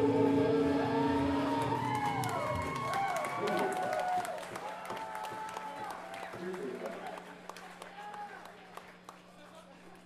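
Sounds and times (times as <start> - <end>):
guitar feedback tone bending: 0.0 - 2.3.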